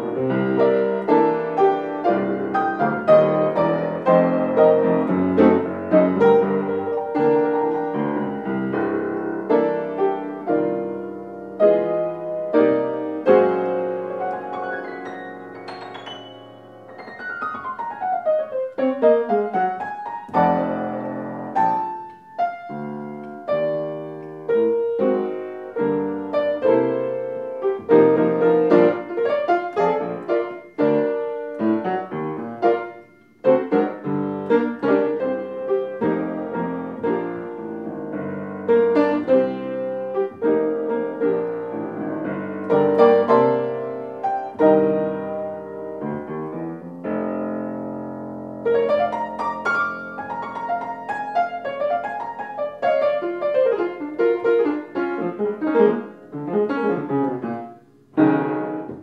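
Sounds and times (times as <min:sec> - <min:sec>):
solo jazz piano: 0:00.0 - 0:59.0.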